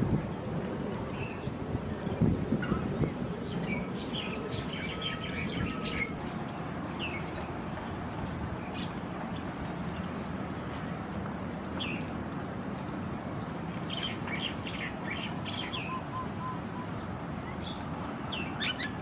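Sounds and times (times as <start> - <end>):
songbirds chirping: 1.1 - 19.0.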